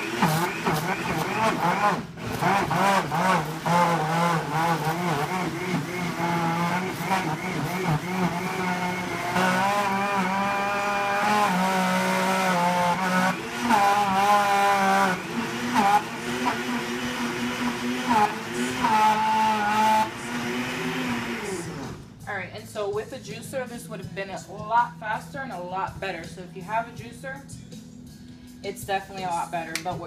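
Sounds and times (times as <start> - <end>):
blender motor whining: 0.0 - 22.1.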